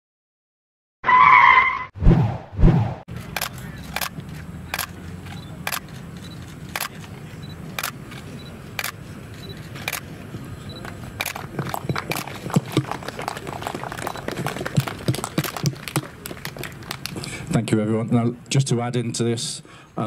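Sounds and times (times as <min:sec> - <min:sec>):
outdoor crowd: 0:03.1 - 0:20.0
camera shutter clicks: 0:03.2 - 0:05.0, 0:05.6 - 0:07.1, 0:07.8 - 0:10.1, 0:11.2 - 0:11.5.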